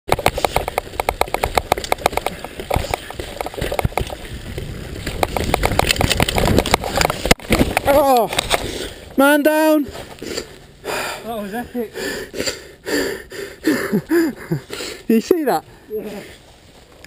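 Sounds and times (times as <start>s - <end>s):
wind noise: 0.1s - 9.1s
bike rattling over bumps: 0.1s - 9.2s
tyre noise: 0.1s - 10.5s.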